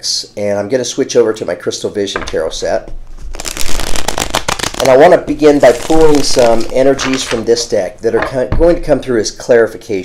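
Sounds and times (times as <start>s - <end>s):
cards being shuffled: 3.0s - 7.8s.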